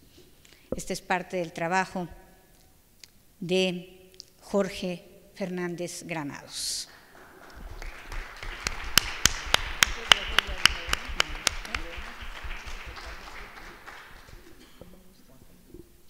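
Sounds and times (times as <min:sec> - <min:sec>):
audience applauding: 0:07.0 - 0:14.8
close sharp hand clapping: 0:07.0 - 0:14.8.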